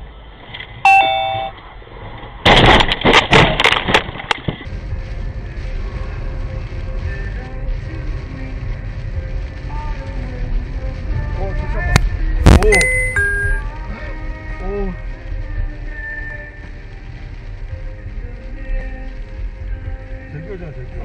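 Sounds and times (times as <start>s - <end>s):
car road noise on wet road: 0.0s - 21.0s
two-note chime: 0.9s - 1.5s, 12.6s - 13.6s.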